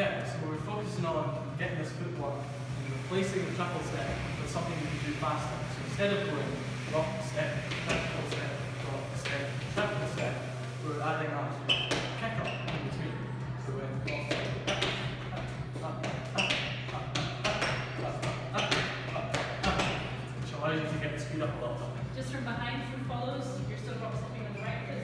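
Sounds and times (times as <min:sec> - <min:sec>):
steady low hum: 0:00.0 - 0:25.0
shoes tapping on tiled floor: 0:07.5 - 0:10.7, 0:11.7 - 0:13.0, 0:14.0 - 0:20.3.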